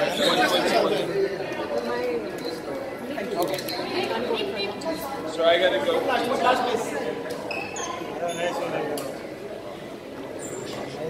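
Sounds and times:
indistinct crowd chatter: 0:00.0 - 0:11.0.

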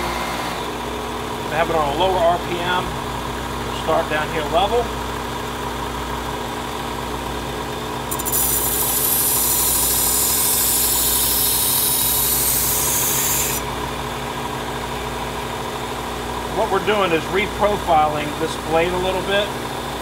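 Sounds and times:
belt sharpener motor hum: 0:08.0 - 0:13.9
knife grinding on belt: 0:08.1 - 0:13.6.

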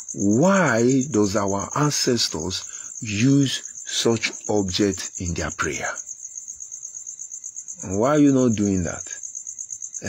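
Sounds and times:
insect trilling: 0:00.0 - 0:10.0.

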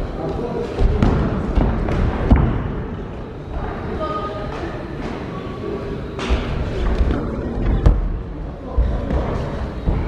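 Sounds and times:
murmur and calls of spectators: 0:00.0 - 0:10.0.

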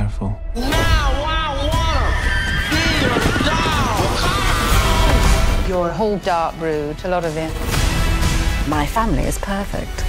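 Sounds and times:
background music: 0:00.0 - 0:10.0
horse whinnying: 0:01.9 - 0:05.0.

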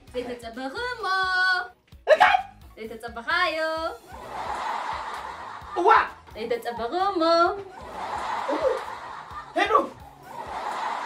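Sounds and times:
breathy snicker: 0:07.7 - 0:09.6.

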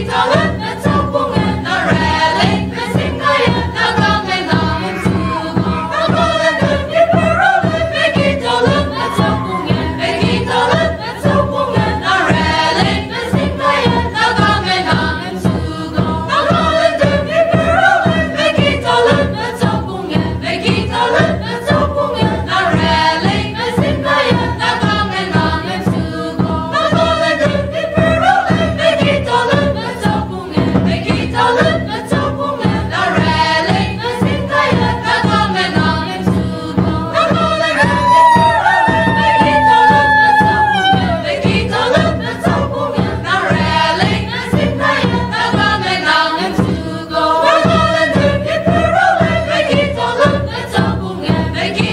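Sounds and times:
steady rhythmic beat: 0:00.0 - 0:18.0
group singing folk song: 0:00.0 - 0:51.9.

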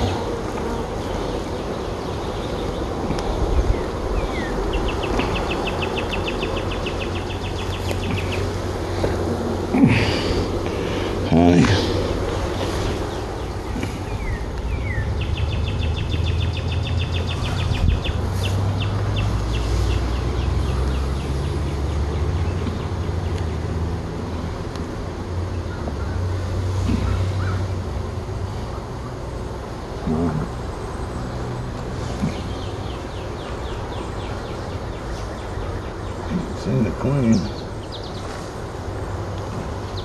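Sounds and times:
bees humming: 0:00.0 - 0:40.0
bird trilling chirps: 0:11.5 - 0:21.7.

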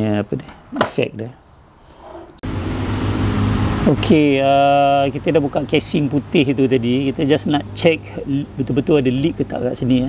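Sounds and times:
outdoor hiss and hum: 0:00.0 - 0:10.0.

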